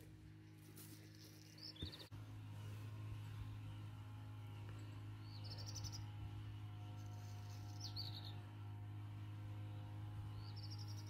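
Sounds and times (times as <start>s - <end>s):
low hum: 0.0s - 11.0s
songbird singing: 0.5s - 2.1s, 4.7s - 8.5s, 10.2s - 11.0s.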